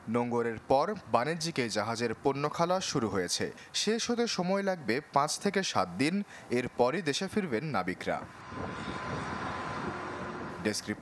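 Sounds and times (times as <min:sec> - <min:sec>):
deck machinery drone: 0:08.4 - 0:11.0.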